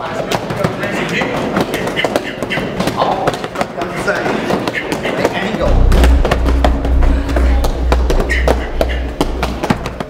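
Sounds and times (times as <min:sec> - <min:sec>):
low rumble: 0:05.6 - 0:10.0.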